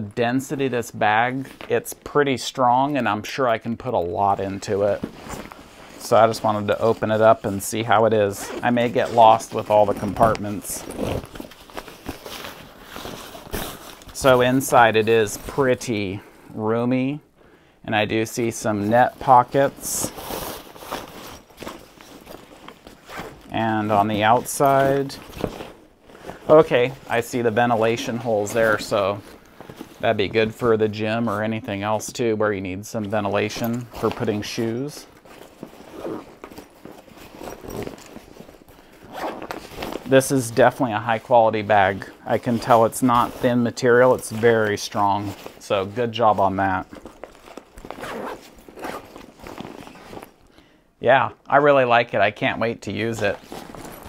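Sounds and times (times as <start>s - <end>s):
fabric backpack rustling: 3.2s - 16.6s, 18.1s - 50.5s, 53.0s - 54.0s
zipper rasping: 5.0s - 14.4s, 19.4s - 30.0s, 35.0s - 40.3s, 46.8s - 50.4s, 53.4s - 54.0s.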